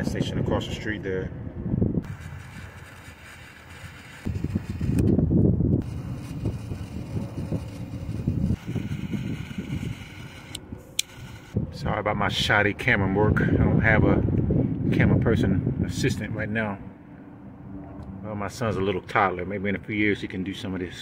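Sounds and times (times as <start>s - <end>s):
torch lighter burning: 2.0s - 5.2s, 5.8s - 11.6s
sharp clicks: 10.5s - 11.6s.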